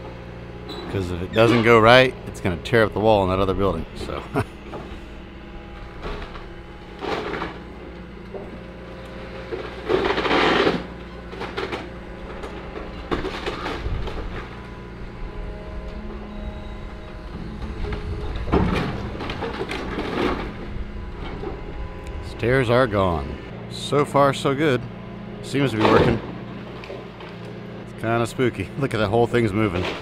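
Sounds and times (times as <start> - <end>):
excavator diesel engine: 0.0 - 30.0
wood cracking and crashing: 5.8 - 15.2, 17.1 - 23.2, 29.4 - 30.0.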